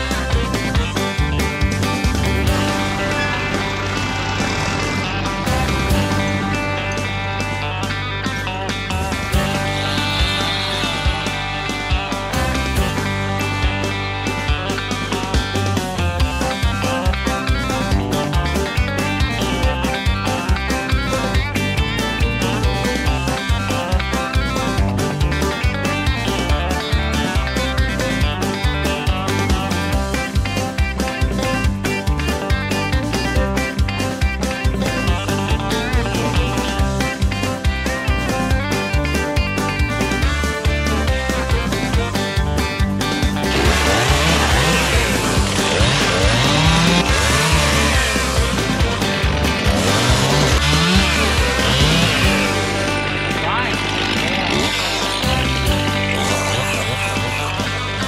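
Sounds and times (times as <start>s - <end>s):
country tune led by guitar: 0.0s - 58.0s.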